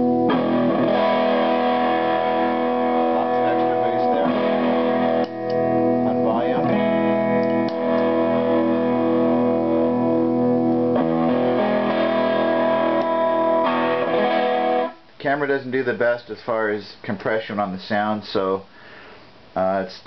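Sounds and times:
distorted electric guitar chords: 0.0s - 15.1s.

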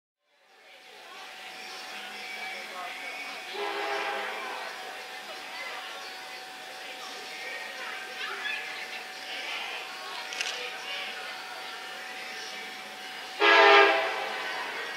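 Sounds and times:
faint voices: 0.2s - 14.9s
outdoor noise: 0.2s - 14.9s
distant train horn blast: 3.5s - 4.6s, 13.4s - 14.8s.

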